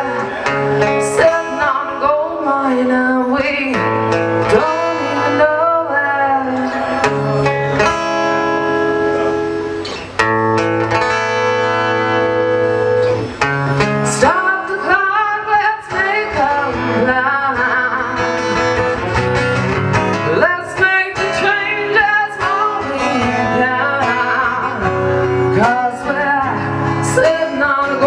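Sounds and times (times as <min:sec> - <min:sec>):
woman singing into a microphone: 0:00.0 - 0:07.5, 0:14.0 - 0:19.1, 0:20.1 - 0:28.0
strummed acoustic guitar: 0:00.0 - 0:28.0.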